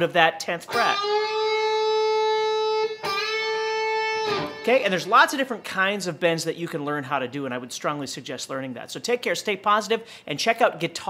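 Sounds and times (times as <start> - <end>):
electric guitar note bending: 0.7 - 5.1.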